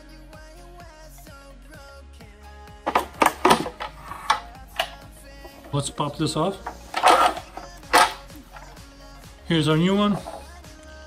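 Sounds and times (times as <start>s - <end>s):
quiet background music: 0.0s - 11.0s
plastic knocks and clatters: 2.9s - 5.0s.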